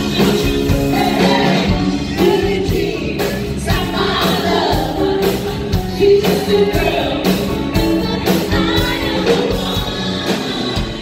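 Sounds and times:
live rock band playing: 0.0s - 11.0s
woman singing into a microphone: 0.0s - 11.0s.

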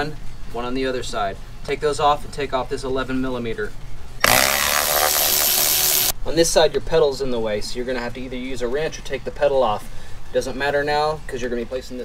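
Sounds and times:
electric ratchet motor whirring: 4.2s - 6.1s.

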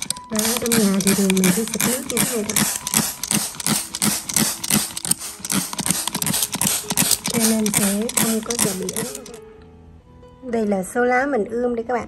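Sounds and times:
spray bottle misting: 0.0s - 9.4s
spray trigger click: 0.0s - 9.4s.

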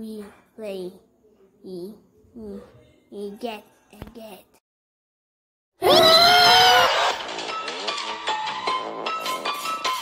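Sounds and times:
high-pitched scream: 5.8s - 7.2s.

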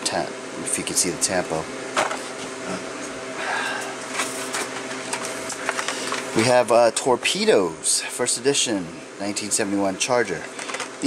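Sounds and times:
background hum: 0.0s - 11.0s
blister packs clicking and rustling: 4.2s - 6.3s, 10.4s - 11.0s.

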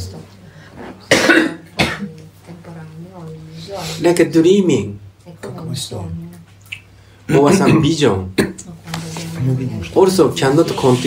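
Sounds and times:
man coughing: 1.1s - 2.1s, 7.3s - 8.6s.

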